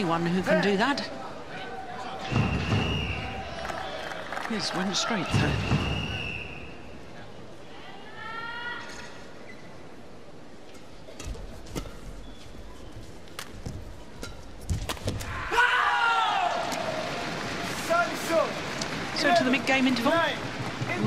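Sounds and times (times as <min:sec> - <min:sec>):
crowd cheering and shouting: 0:15.2 - 0:21.0.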